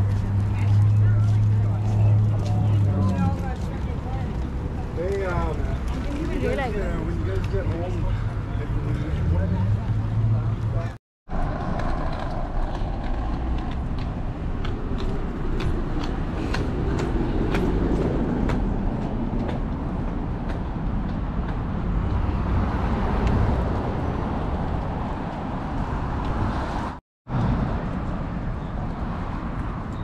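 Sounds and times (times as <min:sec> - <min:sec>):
traffic hum: 0:00.0 - 0:30.0
footsteps on pavement: 0:11.6 - 0:22.3.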